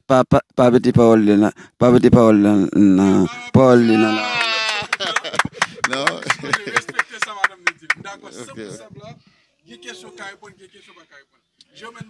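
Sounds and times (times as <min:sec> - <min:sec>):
man's drawn-out vocal sound: 0:02.5 - 0:04.9
hand claps: 0:04.2 - 0:08.2.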